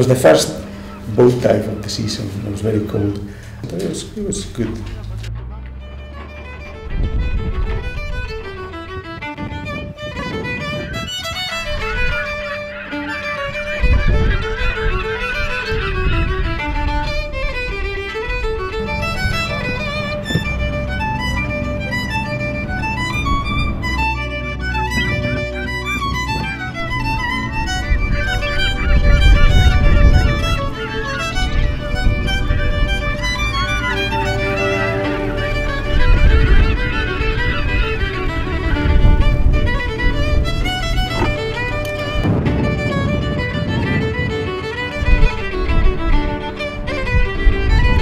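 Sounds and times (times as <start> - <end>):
fiddle tune: 0.0 - 48.0
low accompaniment: 0.0 - 48.0.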